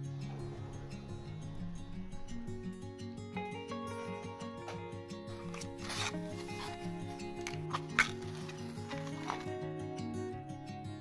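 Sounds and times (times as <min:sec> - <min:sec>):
soft background music: 0:00.0 - 0:11.0
match striking: 0:05.3 - 0:09.8.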